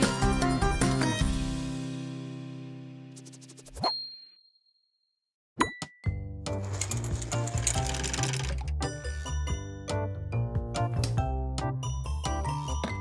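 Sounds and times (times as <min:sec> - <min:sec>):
bouncy children's music: 0:00.0 - 0:01.9, 0:06.0 - 0:13.0.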